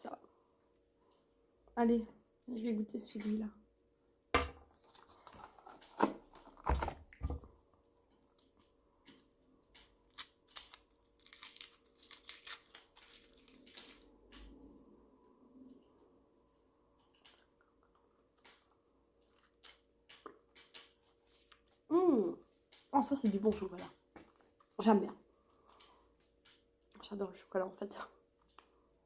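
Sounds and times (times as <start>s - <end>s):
foil wrapper crinkling: 4.8s - 6.7s, 10.0s - 14.1s.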